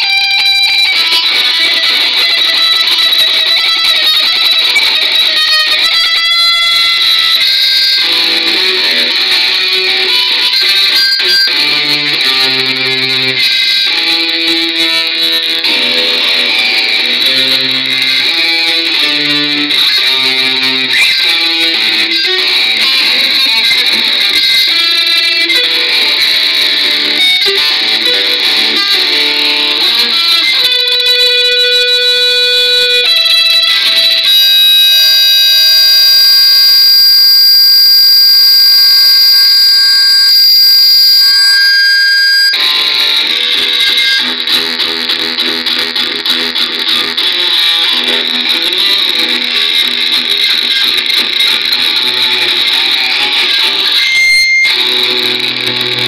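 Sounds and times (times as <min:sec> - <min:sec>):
metal guitar instrumental: 0:00.0 - 0:56.0.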